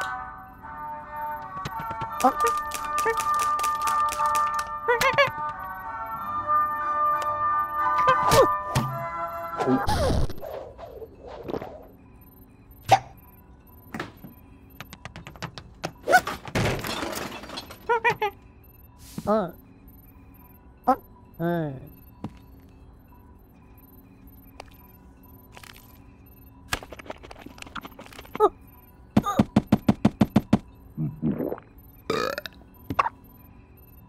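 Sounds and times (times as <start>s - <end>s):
cartoon burps: 31.0s - 33.1s.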